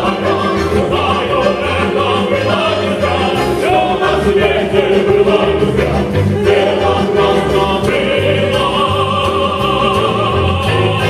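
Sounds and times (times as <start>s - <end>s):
accordion: 0.0s - 11.0s
vocal trio singing in harmony: 0.0s - 11.0s.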